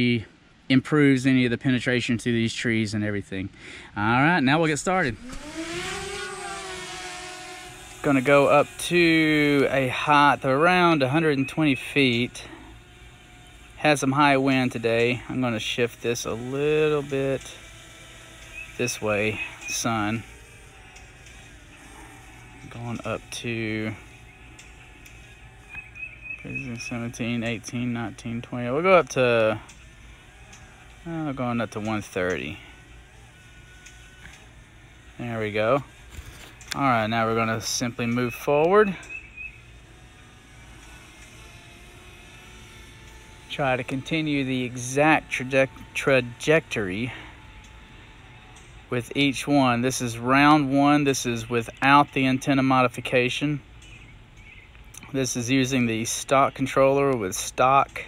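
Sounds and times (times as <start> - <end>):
drone propellers buzzing whine: 0.0 - 58.0.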